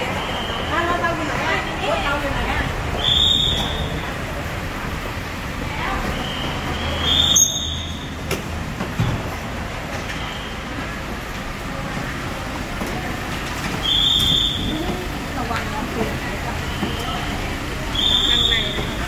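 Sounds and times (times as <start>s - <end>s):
faint voices: 0.0s - 8.1s, 9.6s - 19.0s
vehicles idling rumble: 0.0s - 19.0s.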